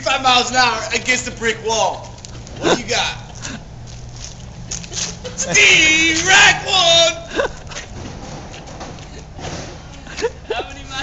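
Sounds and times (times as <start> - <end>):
low urban background rumble: 0.0 - 11.0.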